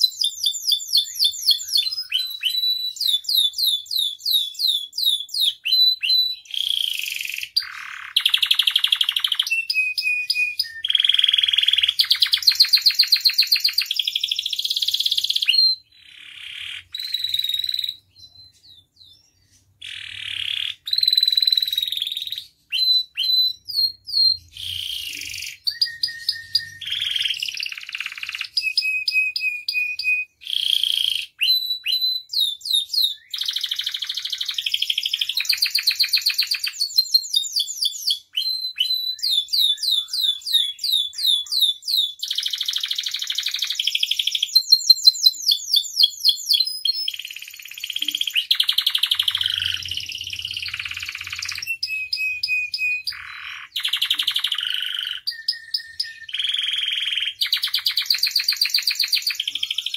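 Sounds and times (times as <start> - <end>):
canary singing: 0.0 - 59.9.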